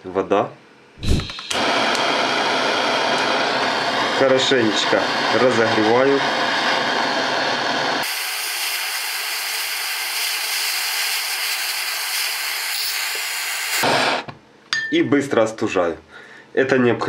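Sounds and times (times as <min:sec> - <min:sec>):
heat gun hissing: 0:01.0 - 0:14.3.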